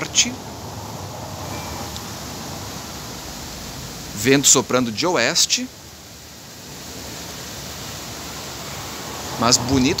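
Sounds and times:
gusty wind through palm trees: 0:00.0 - 0:10.0.

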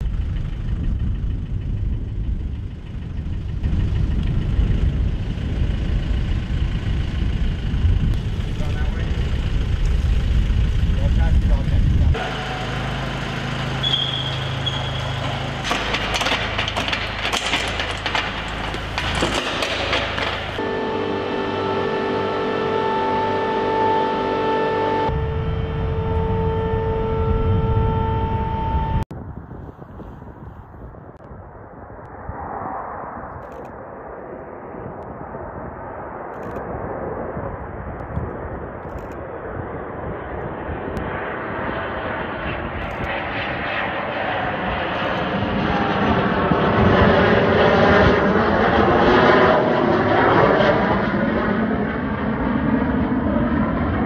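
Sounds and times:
machine noise with whine: 0:00.0 - 0:29.1, 0:30.0 - 0:54.0
jet engine approaching: 0:00.0 - 0:54.0.

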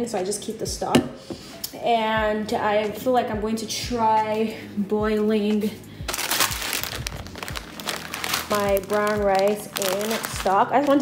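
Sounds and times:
plastic bag crinkling: 0:06.1 - 0:11.0.

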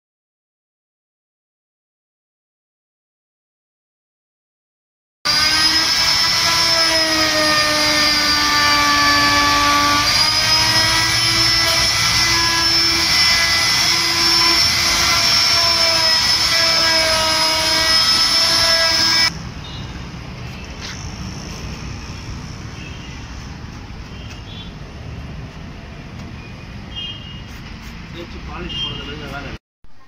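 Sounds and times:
electric power tool motor whine: 0:05.3 - 0:19.3.

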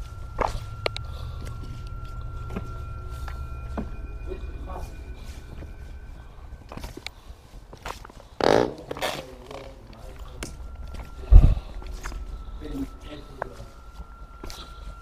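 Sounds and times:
footsteps over debris: 0:00.0 - 0:15.0
heavy low thump: 0:10.4 - 0:13.6.

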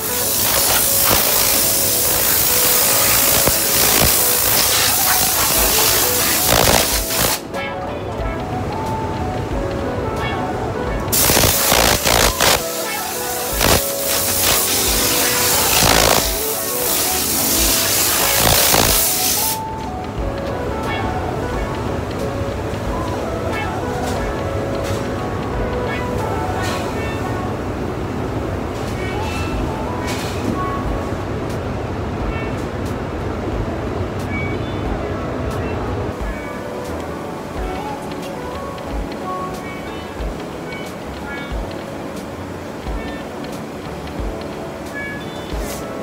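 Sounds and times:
spray gun hissing: 0:00.0 - 0:07.4, 0:11.1 - 0:19.6
factory machinery noise: 0:00.0 - 0:46.0
music: 0:00.0 - 0:46.0.

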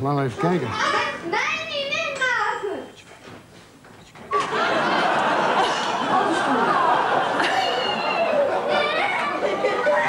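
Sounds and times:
children shouting: 0:05.9 - 0:10.0.

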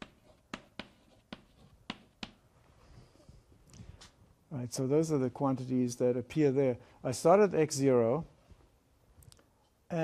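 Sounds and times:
chalk tapping on blackboard: 0:00.0 - 0:02.4.

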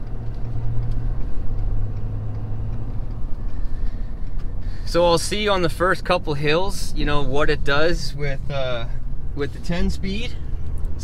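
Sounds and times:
engine and road hum in cab: 0:00.0 - 0:11.0.

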